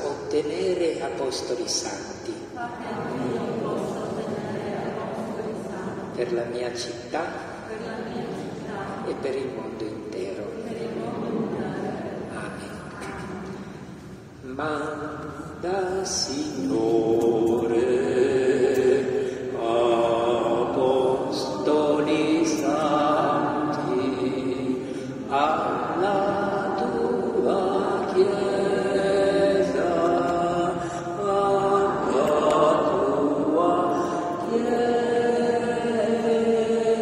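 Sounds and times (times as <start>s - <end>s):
slow chant-like singing: 2.6s - 6.2s, 7.5s - 37.0s.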